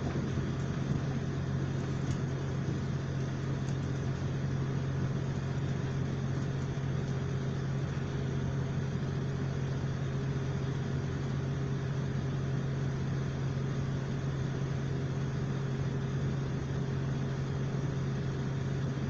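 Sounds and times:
wheel and rail rumble: 0.0s - 8.5s
diesel engine low drone: 0.0s - 19.0s.

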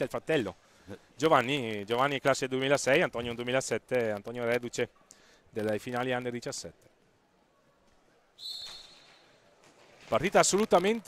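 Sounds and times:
referee's whistle blast: 8.4s - 9.2s.

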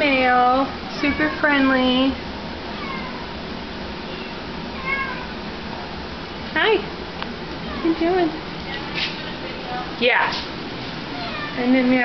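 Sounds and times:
cat meowing: 0.9s - 1.8s, 2.7s - 3.4s, 4.0s - 5.4s, 7.6s - 8.0s, 11.1s - 11.6s.

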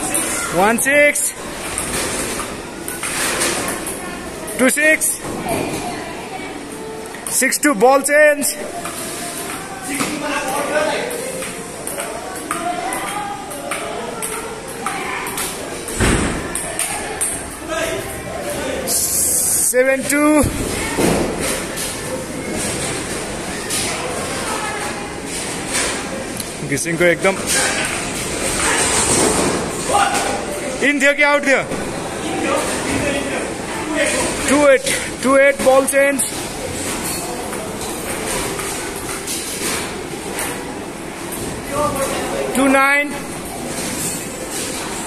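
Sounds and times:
people talking: 3.6s - 38.6s.

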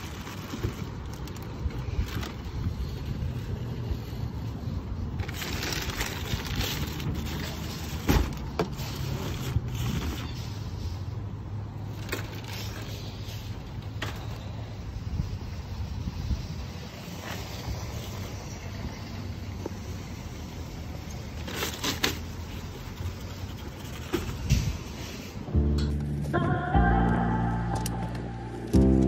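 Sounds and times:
steady low rumble: 24.4s - 29.0s.

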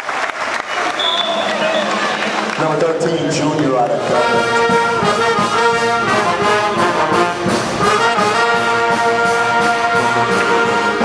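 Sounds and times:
brass section playing: 4.0s - 11.0s.

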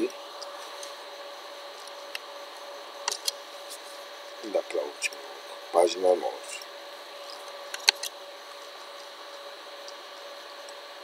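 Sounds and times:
faint steady hum: 0.0s - 11.0s
room tone hiss: 0.0s - 11.0s.

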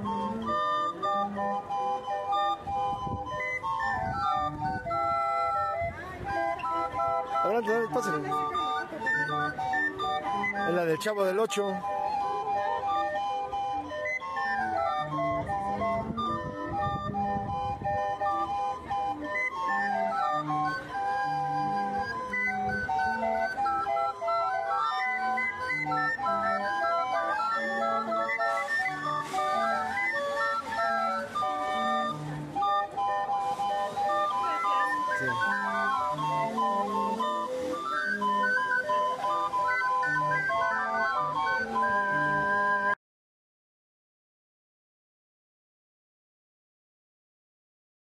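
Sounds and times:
barrel organ playing tune: 0.0s - 43.0s.

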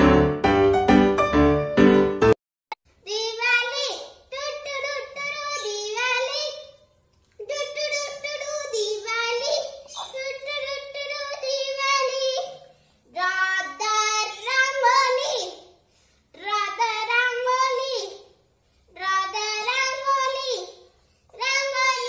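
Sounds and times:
girl singing unaccompanied: 3.0s - 6.7s, 7.4s - 15.6s, 18.9s - 20.8s, 21.4s - 22.0s.

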